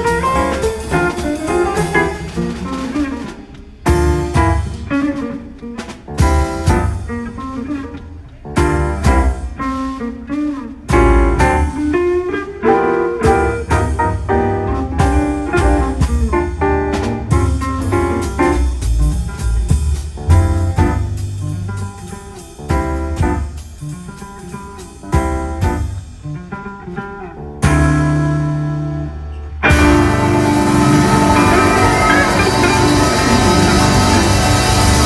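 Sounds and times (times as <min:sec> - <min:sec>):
jazz band playing: 0:00.0 - 0:35.0
audience applause: 0:29.8 - 0:35.0.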